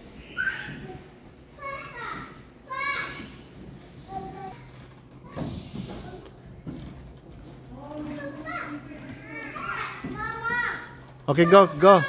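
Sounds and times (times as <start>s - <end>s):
children calling and chattering: 7.8s - 12.0s.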